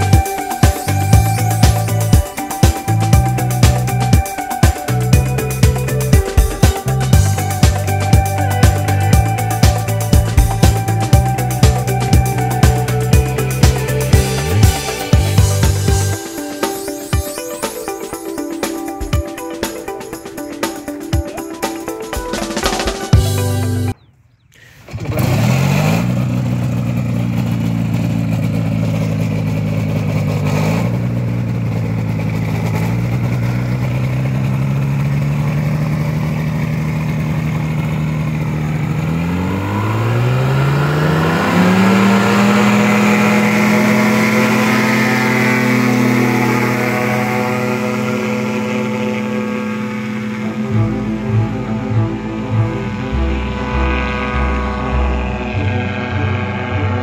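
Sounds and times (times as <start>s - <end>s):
engine running and revving: 0.0s - 24.0s, 24.7s - 57.0s.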